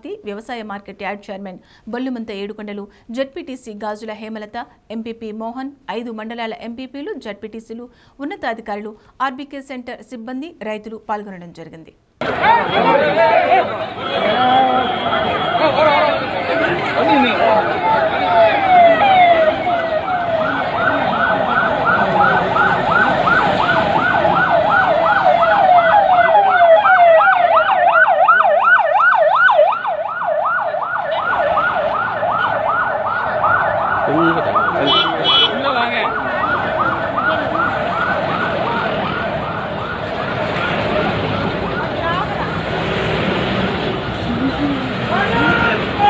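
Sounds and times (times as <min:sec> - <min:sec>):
vehicle siren yelping: 0:12.2 - 0:42.8, 0:43.7 - 0:46.0.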